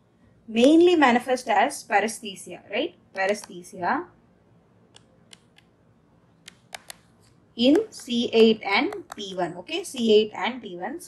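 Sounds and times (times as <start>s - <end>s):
stylus tapping on tablet screen: 3.2s - 3.6s, 4.9s - 5.8s, 6.4s - 10.1s.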